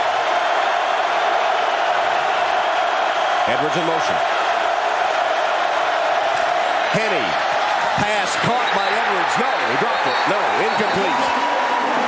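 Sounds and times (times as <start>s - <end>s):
stadium crowd noise on television: 0.0s - 12.0s.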